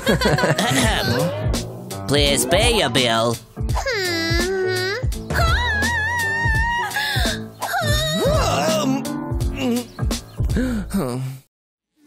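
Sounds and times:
background music: 0.0s - 11.2s
voice whimpering and wailing: 3.7s - 9.9s.

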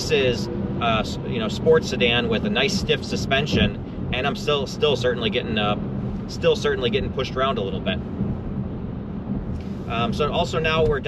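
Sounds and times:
road and wind rumble in car: 0.0s - 11.0s.

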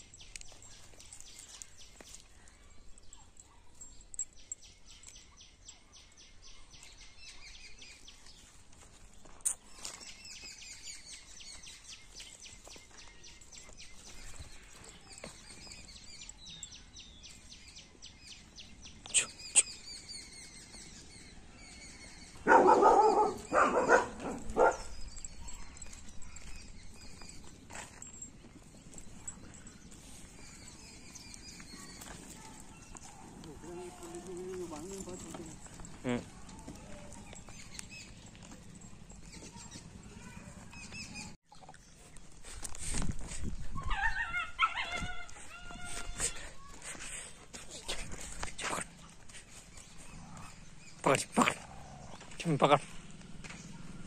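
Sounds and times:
birds chirping in trills: 0.0s - 42.8s, 43.5s - 54.0s
dog barking loudly: 22.4s - 24.9s.

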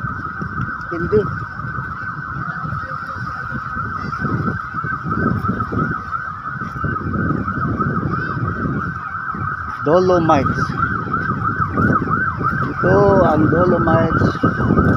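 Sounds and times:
siren yelping: 0.0s - 14.9s.

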